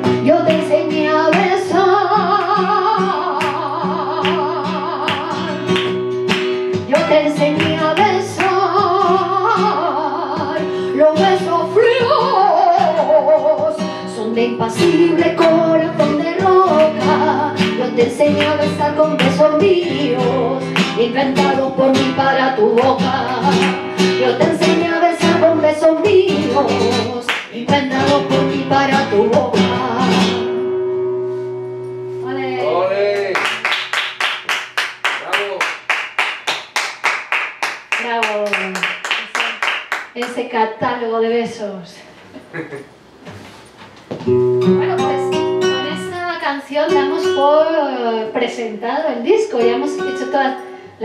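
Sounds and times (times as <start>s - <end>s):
woman singing flamenco: 0.0s - 31.2s, 31.8s - 32.8s, 37.9s - 42.2s, 44.3s - 51.0s
flamenco guitar: 0.0s - 41.6s, 43.2s - 51.0s
rhythmic hand claps: 0.5s - 8.7s, 16.5s - 19.8s, 20.6s - 21.0s, 22.7s - 24.2s, 27.3s - 27.8s, 33.2s - 40.4s.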